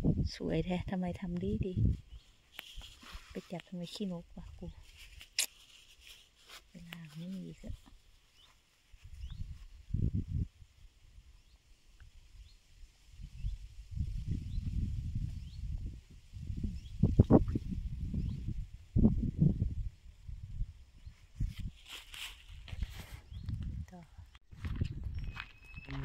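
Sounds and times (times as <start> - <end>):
wind buffeting microphone: 0.0 - 2.2, 9.0 - 10.7, 13.1 - 21.8, 22.7 - 26.0.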